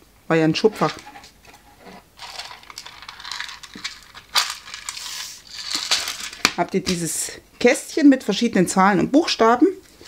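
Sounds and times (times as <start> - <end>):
paper rustling: 0.8 - 6.6
plastic clicks and rattles: 2.2 - 5.0.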